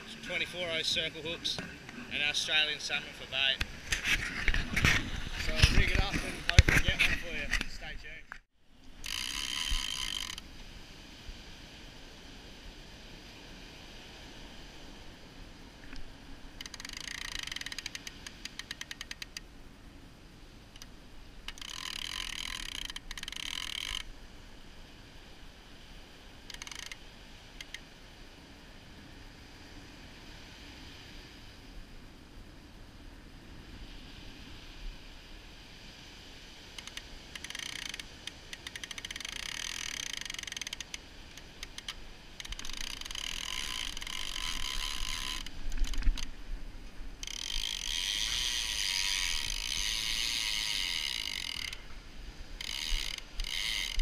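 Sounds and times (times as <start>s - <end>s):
fishing reel ratchet clicking: 9.0s - 10.4s, 16.6s - 19.4s, 21.5s - 24.1s, 26.5s - 27.0s, 36.8s - 46.3s, 47.2s - 51.9s, 52.6s - 54.0s.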